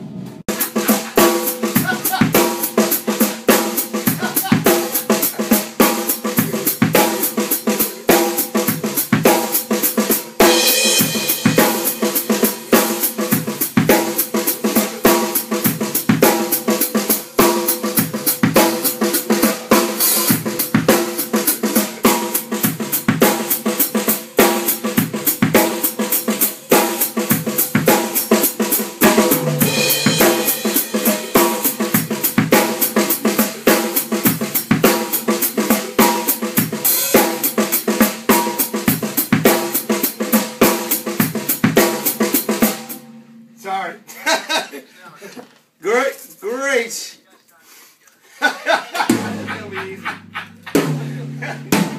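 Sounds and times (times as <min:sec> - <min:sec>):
drum kit groove: 0:00.0 - 0:44.6, 0:48.5 - 0:51.9.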